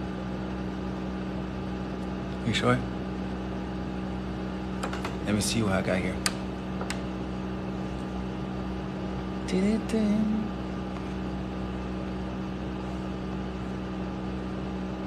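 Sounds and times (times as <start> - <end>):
appliance humming: 0.0 - 15.0.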